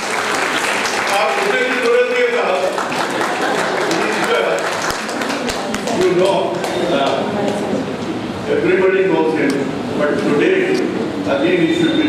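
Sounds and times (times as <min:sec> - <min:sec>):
scattered hand clapping: 0:00.0 - 0:07.6.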